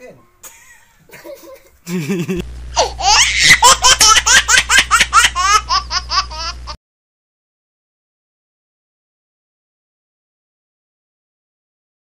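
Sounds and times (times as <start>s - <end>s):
low steady hum: 0.0s - 6.8s
high-pitched laughter: 1.1s - 6.8s.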